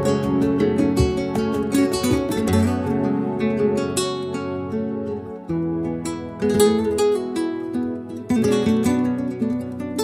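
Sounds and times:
acoustic guitars strumming: 0.0s - 10.0s.

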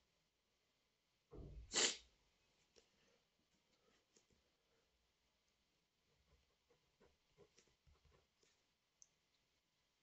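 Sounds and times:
person sneezing: 1.6s - 2.1s.

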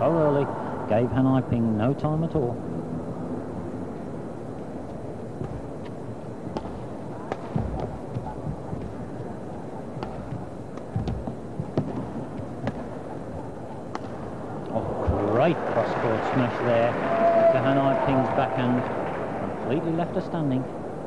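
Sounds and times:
rackets striking shuttlecock: 5.4s - 14.7s.

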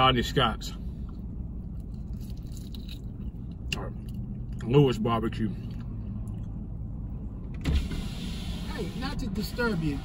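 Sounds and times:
power window going down: 7.6s - 9.0s.

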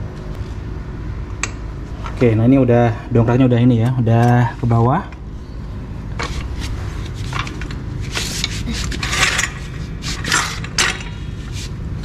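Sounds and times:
floor jack scraping: 6.2s - 11.7s.

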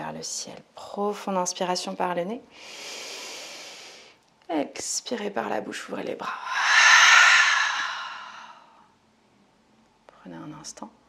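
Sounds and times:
woman deep exhale: 6.5s - 8.9s.

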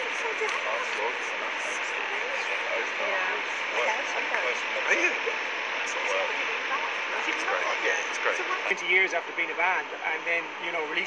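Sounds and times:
people talking indistinctly: 0.0s - 11.0s
steady background hiss: 0.0s - 11.0s.

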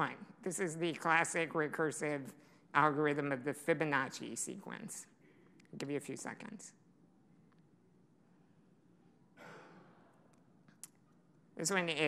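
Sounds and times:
breath into microphone: 2.4s - 2.7s.

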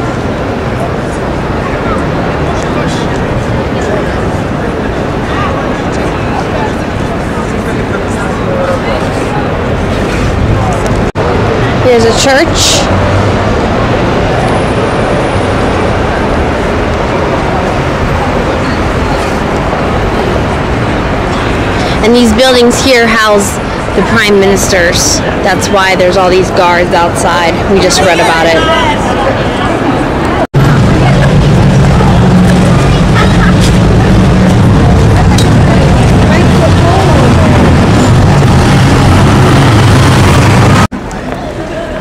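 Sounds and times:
city traffic roar: 0.0s - 42.0s
faint voices of passers-by: 0.0s - 42.0s.

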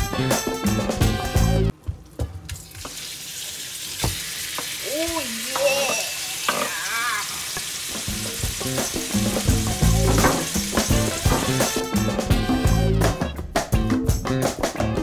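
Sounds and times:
background music: 0.0s - 2.8s, 8.0s - 15.0s
meat sizzling in hot oil: 2.6s - 12.0s.

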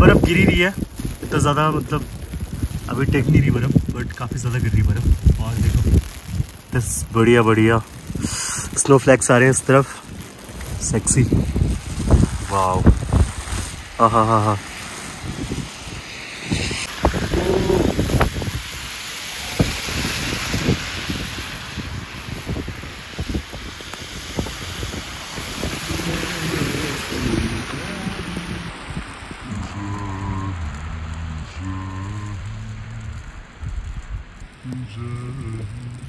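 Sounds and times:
wind buffeting microphone: 0.0s - 36.0s
low stepping tones: 30.0s - 36.0s.

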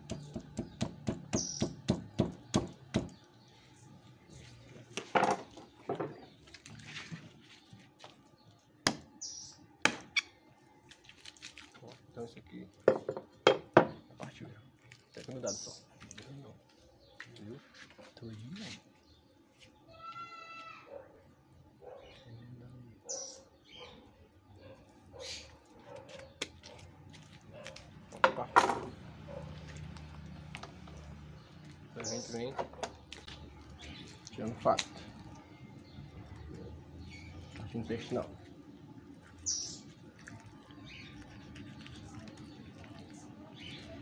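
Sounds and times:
knife chopping bone: 0.0s - 3.2s, 9.8s - 10.2s.

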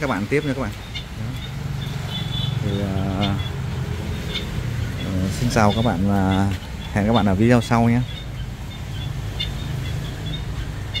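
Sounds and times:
high bird chirps: 0.0s - 11.0s.

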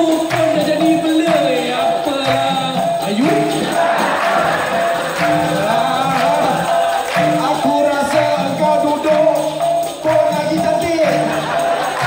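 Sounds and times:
man singing into microphone: 0.0s - 3.8s, 5.3s - 11.4s
jingling hand percussion: 0.0s - 12.0s.

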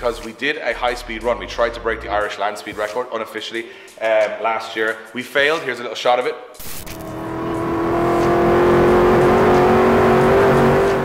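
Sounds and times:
car engine at full throttle: 6.6s - 11.0s.

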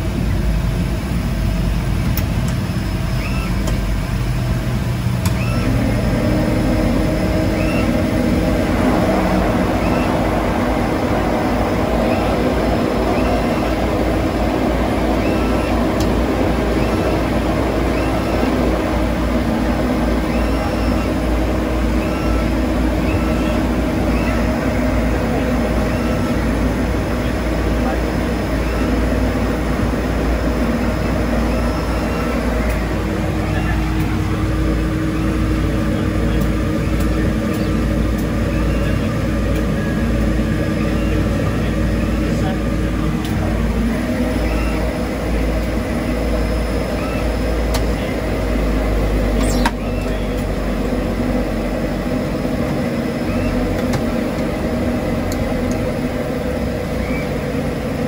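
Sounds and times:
turboprop engines droning: 0.0s - 58.0s.

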